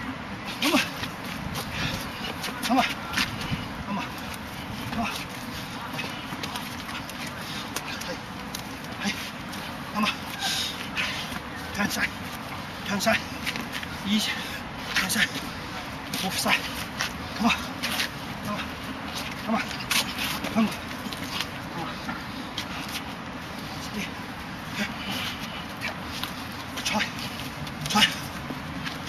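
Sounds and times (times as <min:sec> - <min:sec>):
shuffling feet: 0:00.0 - 0:29.0
men grunting with effort: 0:00.4 - 0:23.0, 0:23.7 - 0:29.0.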